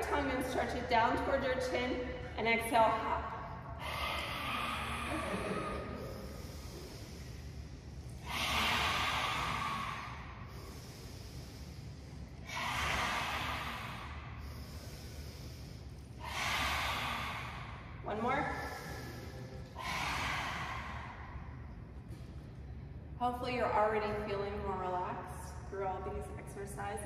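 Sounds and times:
forceful breathy exhales: 3.4 - 21.8
quiet inhales through nose: 3.7 - 21.3.

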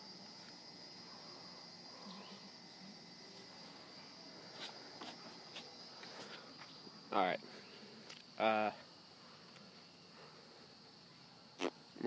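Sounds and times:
insects trilling: 0.0 - 12.0.

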